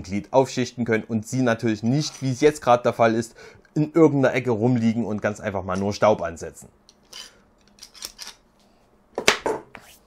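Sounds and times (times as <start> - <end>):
metal clamp clicking and rattling: 6.9 - 8.4.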